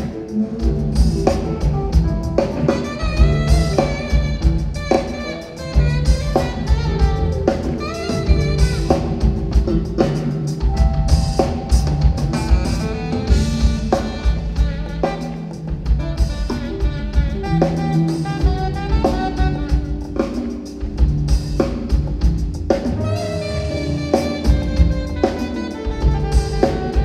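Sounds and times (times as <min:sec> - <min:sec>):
drum kit beat: 0:00.0 - 0:27.0
electric bass: 0:00.0 - 0:27.0
keyboards: 0:00.0 - 0:27.0
saxophone melody: 0:00.0 - 0:27.0.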